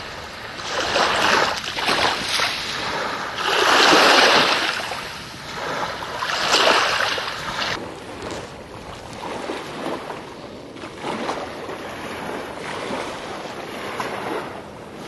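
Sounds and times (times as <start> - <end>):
surf breaking on beach: 0.0 - 10.3
wind on microphone: 0.0 - 15.0.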